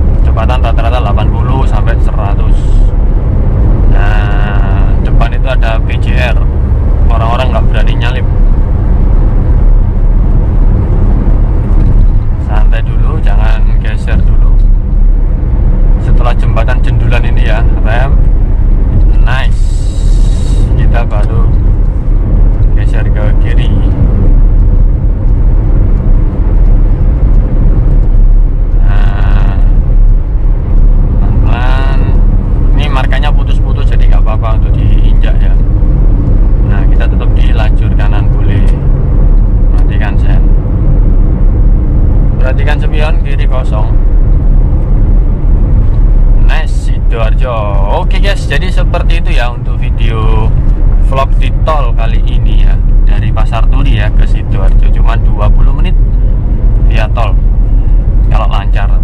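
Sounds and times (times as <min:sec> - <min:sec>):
car engine and tyres droning: 0:00.0 - 0:59.0
people talking: 0:00.3 - 0:02.9, 0:03.9 - 0:06.5, 0:07.1 - 0:08.3, 0:12.5 - 0:14.7, 0:16.0 - 0:18.2, 0:19.0 - 0:21.6, 0:22.8 - 0:23.9, 0:28.8 - 0:29.8, 0:31.2 - 0:35.6, 0:36.7 - 0:38.8, 0:39.8 - 0:40.5, 0:42.4 - 0:44.0, 0:46.4 - 0:50.5, 0:51.1 - 0:56.0, 0:56.9 - 0:57.4, 0:58.3 - 0:59.0.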